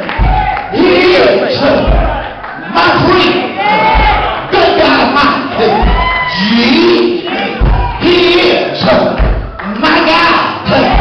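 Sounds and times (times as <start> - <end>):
congregation shouting: 0.0 - 8.9
preacher chanting: 0.0 - 11.0.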